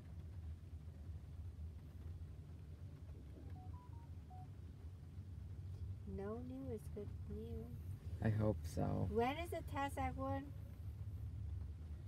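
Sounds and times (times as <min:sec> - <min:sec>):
low hum in car cabin: 0:00.0 - 0:12.0
short electronic beeps: 0:03.5 - 0:04.5.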